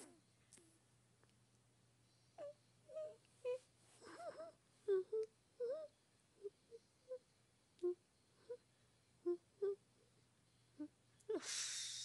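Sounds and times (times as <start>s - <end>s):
voice making whimpering squeaks: 2.4s - 7.2s.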